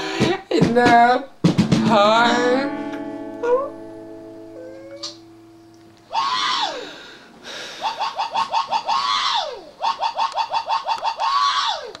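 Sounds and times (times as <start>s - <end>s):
high-pitched wails: 2.3s - 5.4s, 6.0s - 7.2s, 7.8s - 12.0s
short yelps: 6.1s - 6.9s, 7.8s - 12.0s.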